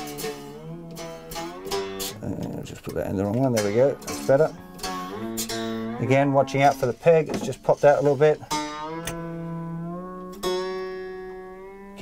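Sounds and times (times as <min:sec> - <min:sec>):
acoustic guitar string ringing: 0:00.0 - 0:12.0.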